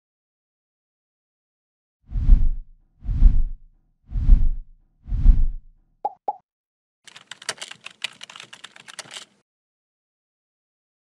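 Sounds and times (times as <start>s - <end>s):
low whoosh: 2.1s - 5.7s
keyboard typing clicks: 7.1s - 9.4s.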